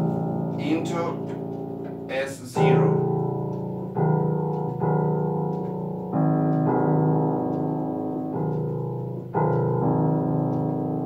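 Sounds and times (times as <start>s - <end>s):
piano playing sustained chords: 0.0s - 11.0s.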